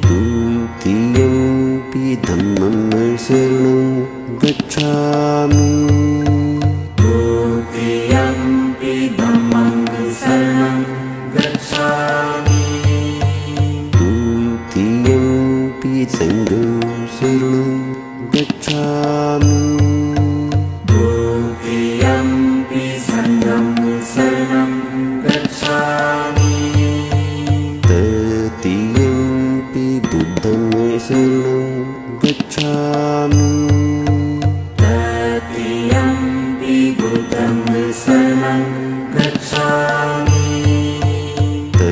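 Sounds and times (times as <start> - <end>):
chanting in long held notes: 0.0 - 41.9
musical backing: 0.0 - 41.9
low pulsing beat: 32.2 - 41.9.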